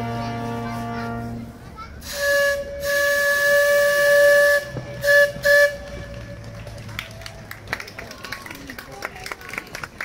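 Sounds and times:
steam boat whistle: 0:02.0 - 0:06.3.

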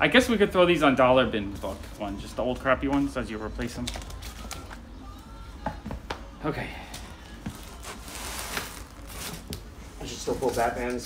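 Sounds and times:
comic books being flipped through: 0:01.5 - 0:04.9, 0:06.9 - 0:11.0.

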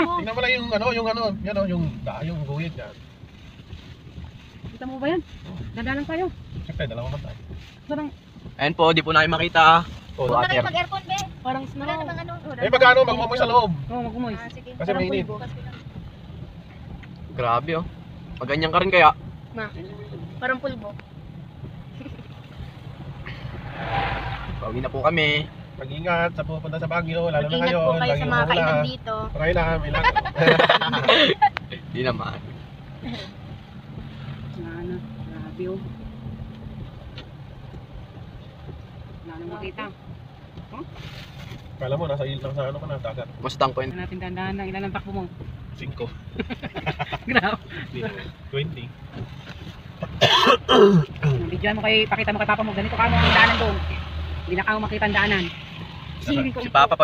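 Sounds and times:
car driving on wet road: 0:00.0 - 0:57.0
rushing hiss: 0:22.5 - 0:27.0
person coughing: 0:50.2 - 0:51.1.

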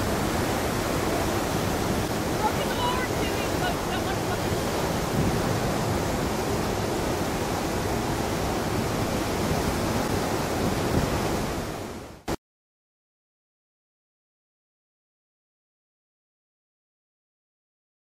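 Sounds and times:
rapids rushing: 0:00.0 - 0:12.3.

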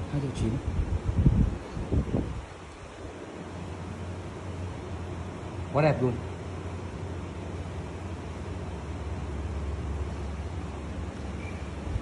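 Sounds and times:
steady low hum: 0:00.0 - 0:12.0
wind on microphone: 0:00.4 - 0:03.2.

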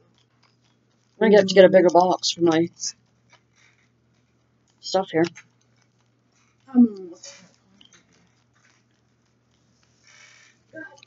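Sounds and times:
faint rustling of wrapping: 0:00.0 - 0:11.0.

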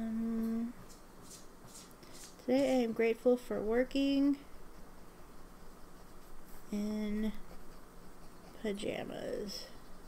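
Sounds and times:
woman humming: 0:00.0 - 0:00.8, 0:06.7 - 0:07.4.

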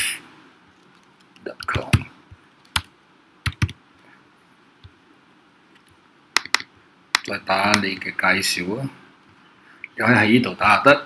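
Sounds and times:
computer keyboard typing: 0:00.9 - 0:03.8.

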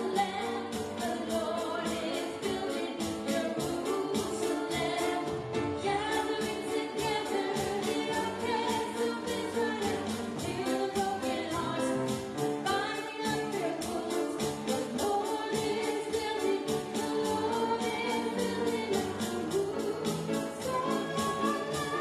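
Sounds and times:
electronic drum beat: 0:00.0 - 0:22.0
girl singing into microphone: 0:00.0 - 0:22.0
piano: 0:00.0 - 0:22.0.

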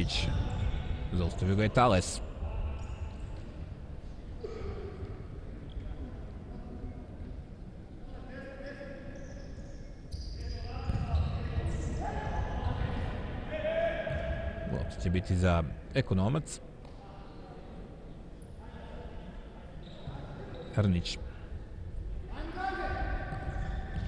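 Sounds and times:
players shouting in echoing hall: 0:10.4 - 0:15.4, 0:22.3 - 0:24.0.

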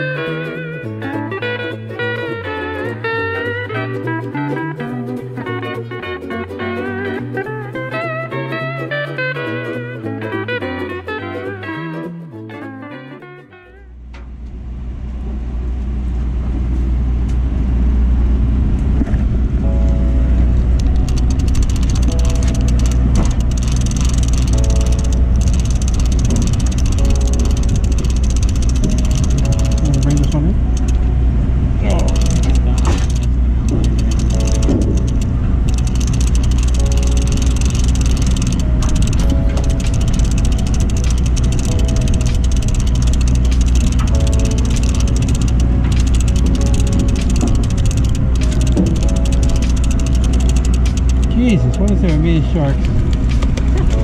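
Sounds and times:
low rumble on boat deck: 0:13.9 - 0:54.0.

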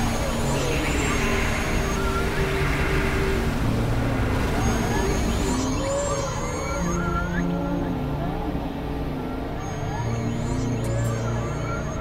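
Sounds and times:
low drone tones: 0:00.0 - 0:12.0.

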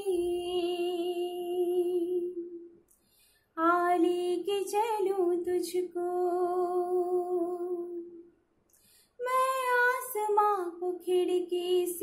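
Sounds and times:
woman singing a lullaby: 0:00.0 - 0:02.6, 0:03.6 - 0:08.1, 0:09.2 - 0:12.0
woman breathing: 0:02.9 - 0:03.6, 0:08.7 - 0:09.2.

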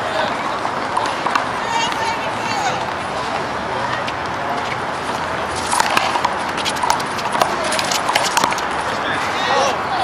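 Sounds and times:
sneakers scuffing on court: 0:04.0 - 0:09.1.

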